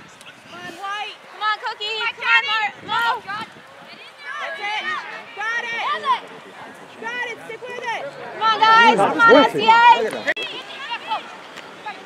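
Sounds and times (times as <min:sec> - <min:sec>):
spectators and players shouting: 0:00.0 - 0:12.0.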